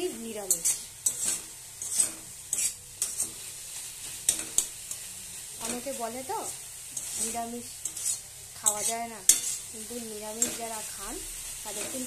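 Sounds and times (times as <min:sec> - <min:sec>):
food sizzling: 0:00.0 - 0:12.0
spatula scraping metal wok: 0:00.0 - 0:12.0.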